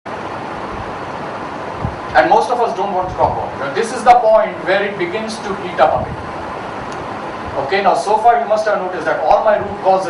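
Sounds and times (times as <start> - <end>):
steady room noise hiss: 0.1 - 10.0.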